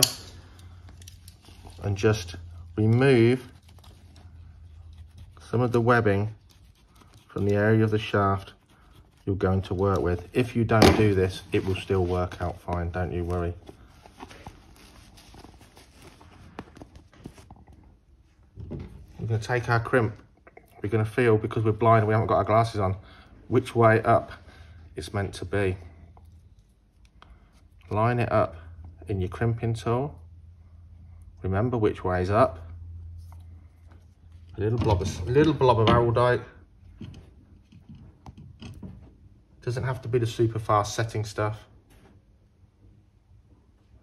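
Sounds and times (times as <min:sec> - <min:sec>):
cloth and feathers rustling: 0:11.2 - 0:17.6.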